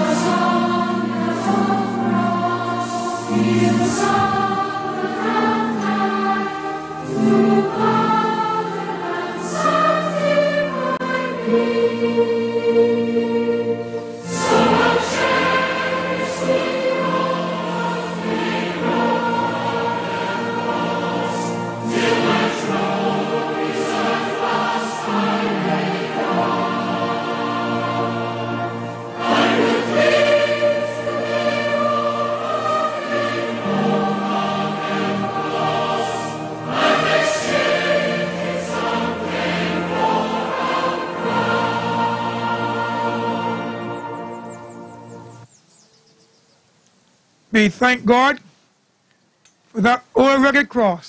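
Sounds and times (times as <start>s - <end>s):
choir singing a hymn: 0.0s - 45.6s.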